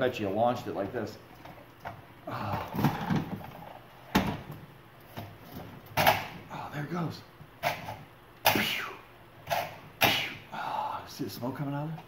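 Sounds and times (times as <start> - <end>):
man making pew sounds: 8.4 - 9.1, 10.0 - 10.7.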